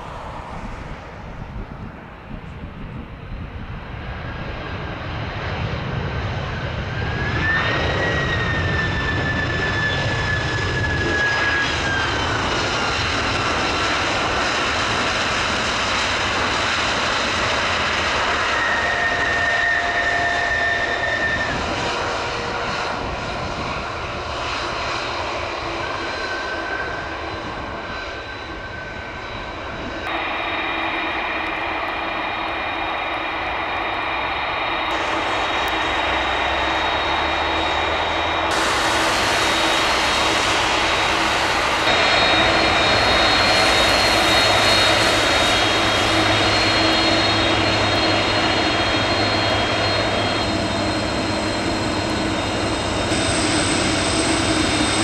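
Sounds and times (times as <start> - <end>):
jet engine reverse thrust: 0.0 - 55.0
jet engine whine: 0.0 - 55.0.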